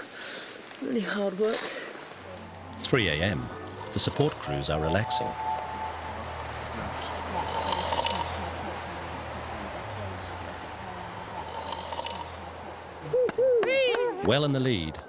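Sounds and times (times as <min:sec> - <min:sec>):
person speaking: 0:00.9 - 0:08.9
man snoring: 0:07.4 - 0:08.4, 0:11.4 - 0:12.3.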